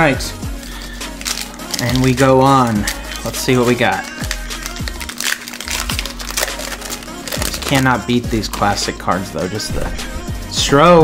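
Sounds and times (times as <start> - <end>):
background music: 0.0 - 11.0
card pack wrapper crinkling and tearing: 0.7 - 3.4, 4.0 - 9.0.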